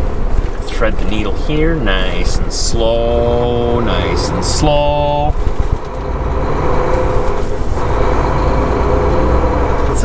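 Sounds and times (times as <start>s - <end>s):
diesel truck engine rumbling: 0.0s - 10.0s.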